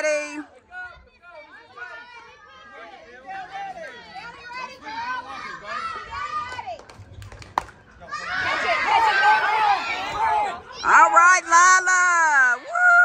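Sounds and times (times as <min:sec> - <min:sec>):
spectators and children talking: 0:00.0 - 0:13.0.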